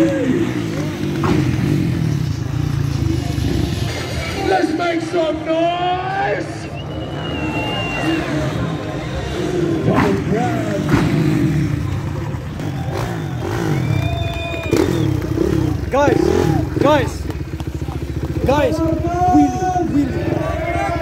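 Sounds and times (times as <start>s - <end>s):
dirt bike engines revving: 0.0s - 21.0s
voices: 0.0s - 21.0s.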